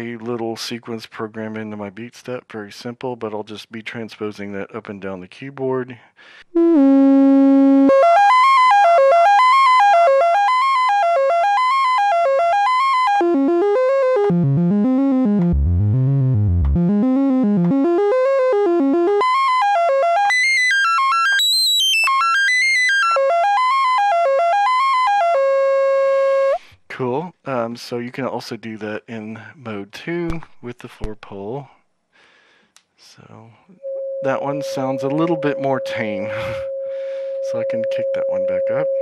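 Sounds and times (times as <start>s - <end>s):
synthesizer note sequence: 6.6s - 26.6s, 33.8s - 38.8s.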